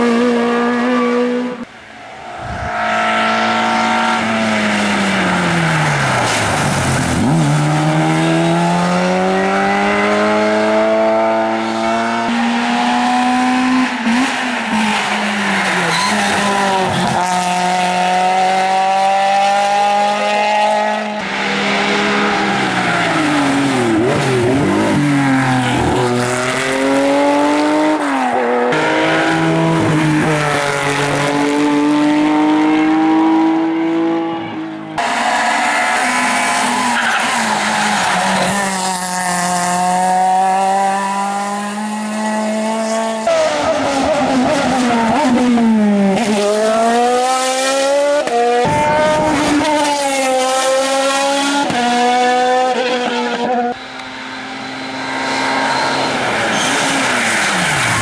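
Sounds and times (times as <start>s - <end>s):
race car engines at full throttle: 0.0s - 58.0s.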